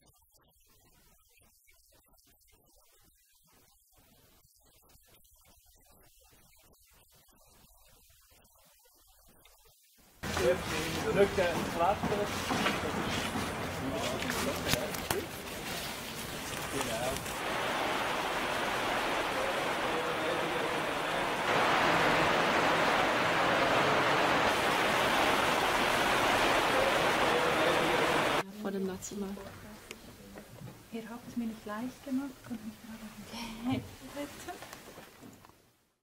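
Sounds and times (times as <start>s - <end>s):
water rushing along a channel: 10.2s - 28.4s.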